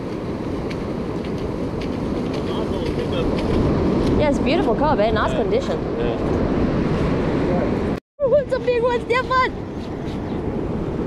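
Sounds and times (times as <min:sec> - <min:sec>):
surf breaking: 0:00.0 - 0:08.0
wind rumbling on microphone: 0:00.0 - 0:11.0.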